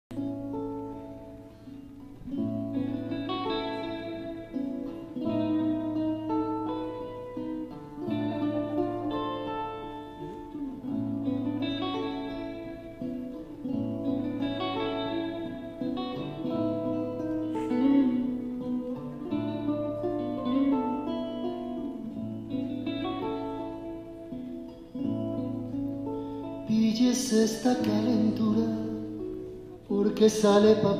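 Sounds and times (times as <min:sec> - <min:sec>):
acoustic and electric guitars playing: 0:00.1 - 0:30.9.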